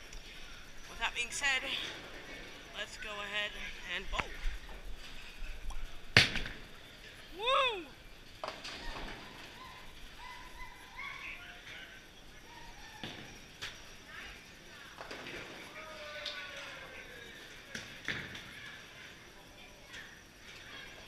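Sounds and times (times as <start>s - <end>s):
faint voices: 0.0s - 21.0s.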